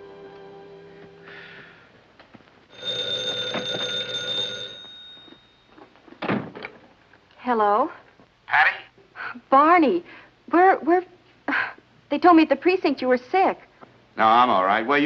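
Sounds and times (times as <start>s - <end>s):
electric bell ringing: 2.7s - 5.8s.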